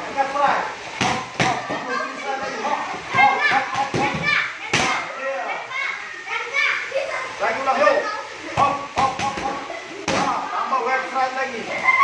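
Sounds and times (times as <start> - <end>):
children chattering and calling: 0.6 - 12.0
punches smacking pads: 8.6 - 10.4.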